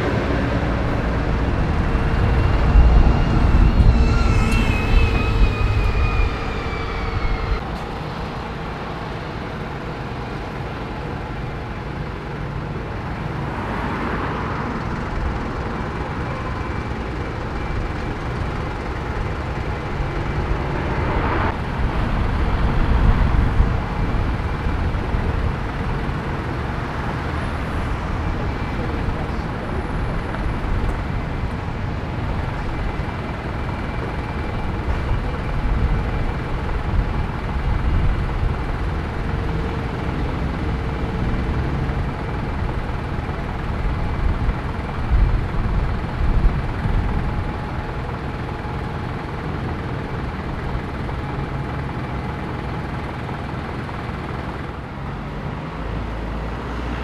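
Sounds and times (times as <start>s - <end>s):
bus driving past: 0.0s - 46.4s
street traffic rumble: 0.0s - 57.0s.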